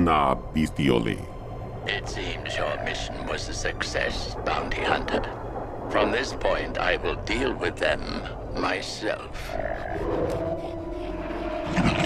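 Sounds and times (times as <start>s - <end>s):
large creature growling: 9.2s - 12.0s.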